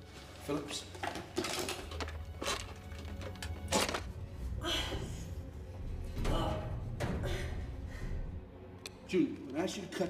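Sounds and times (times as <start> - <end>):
low droning film music: 0.0 - 10.0.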